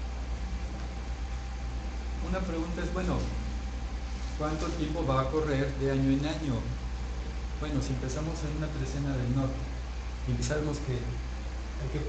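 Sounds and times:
low hum with hiss: 0.0 - 12.0.

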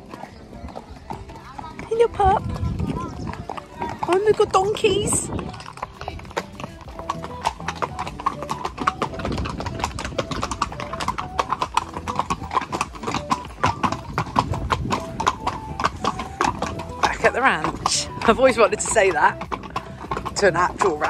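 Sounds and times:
background music: 0.0 - 21.0
horse hooves on pavement: 0.0 - 21.0.

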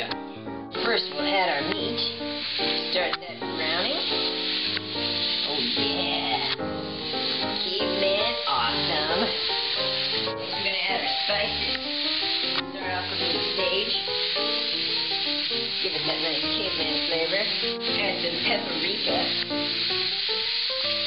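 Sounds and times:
background music: 0.0 - 21.0
meat sizzling in a frying pan: 0.8 - 21.0.

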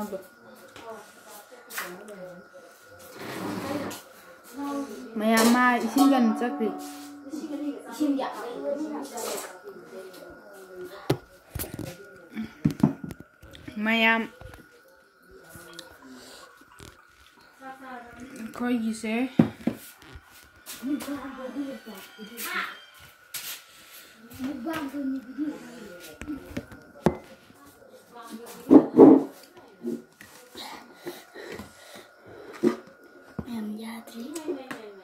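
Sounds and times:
children talking: 0.0 - 13.0, 20.6 - 23.1, 24.2 - 32.8, 33.4 - 35.0
faint high whine: 2.2 - 9.9, 20.0 - 27.9.

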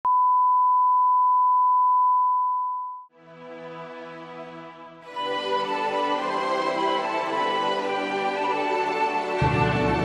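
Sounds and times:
steady test tone beep: 0.0 - 3.1.

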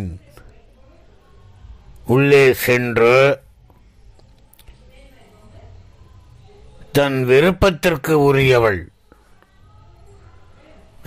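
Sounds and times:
man speaking: 2.1 - 3.4, 6.9 - 8.9.

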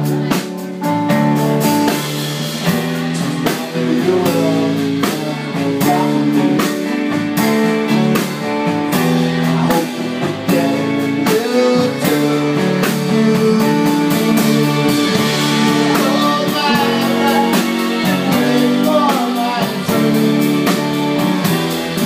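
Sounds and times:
grand piano song: 0.0 - 22.0.

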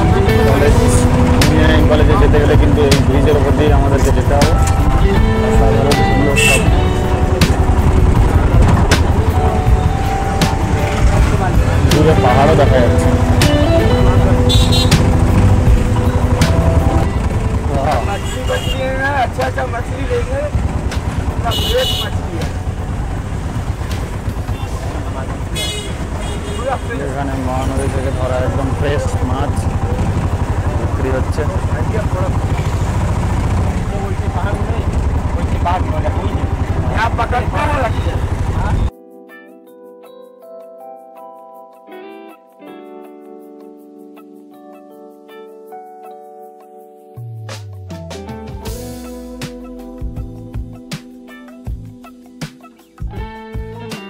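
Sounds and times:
road traffic: 0.0 - 38.9
high-pitched vehicle horn toots: 6.3 - 6.8, 14.4 - 15.2, 18.1 - 19.0, 21.5 - 22.3, 25.5 - 27.0.

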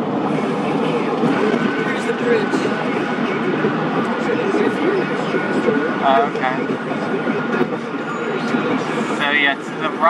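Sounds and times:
car road and tyre noise: 0.0 - 10.0.

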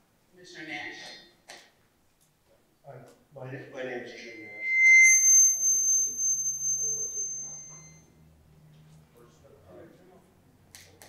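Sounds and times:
microphone feedback squeal: 4.0 - 8.1.

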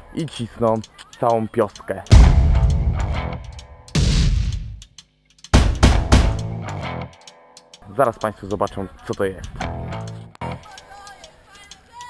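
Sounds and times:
cymbal crashes: 2.1 - 4.8
loud chord hits with drums: 2.1 - 4.8, 5.6 - 6.6.

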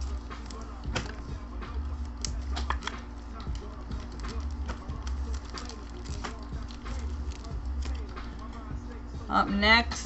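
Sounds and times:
foil pack crinkling: 0.0 - 9.0.

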